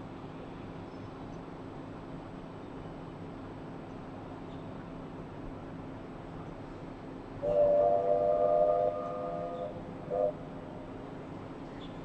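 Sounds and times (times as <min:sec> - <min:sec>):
steam locomotive chime whistle: 0:07.4 - 0:10.5.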